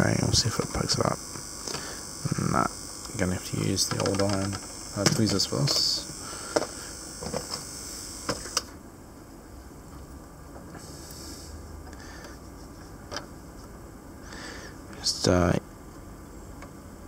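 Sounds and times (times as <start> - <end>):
high hiss: 0.0 - 8.7, 10.8 - 12.2
steady low hum: 0.0 - 17.0
small hand tools clicking: 3.6 - 6.0.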